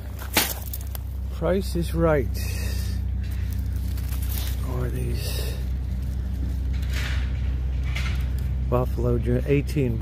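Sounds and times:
foliage rustling: 0:00.0 - 0:09.0
steady low rumble: 0:00.0 - 0:10.0.

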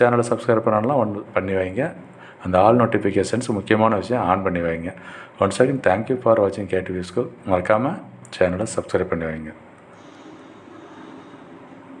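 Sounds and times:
steady background hum and hiss: 0:00.0 - 0:12.0.

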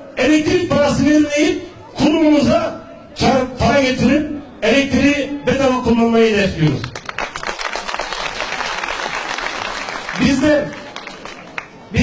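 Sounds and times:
audience applauding: 0:06.8 - 0:11.8.

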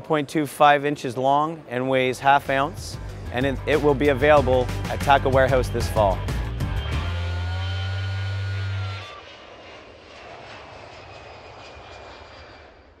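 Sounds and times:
airplane flyby rushing: 0:01.5 - 0:13.0
loud held low note: 0:02.9 - 0:09.2.

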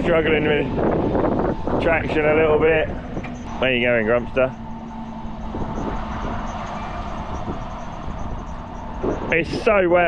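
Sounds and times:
tractor engine drone: 0:00.0 - 0:10.0.

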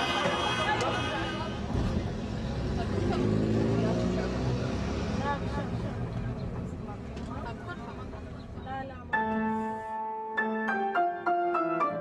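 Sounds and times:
vehicle engine rumbling: 0:00.0 - 0:09.2.

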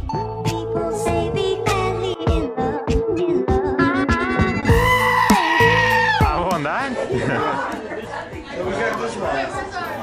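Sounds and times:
goat screaming: 0:04.8 - 0:06.4.

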